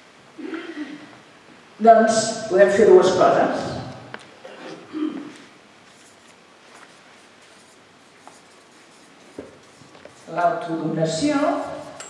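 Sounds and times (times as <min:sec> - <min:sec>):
marker pen scratching on paper: 0:05.8 - 0:10.4.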